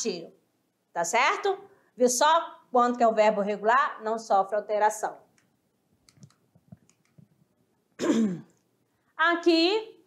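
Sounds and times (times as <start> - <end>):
woman clearing her throat: 8.0 - 8.6.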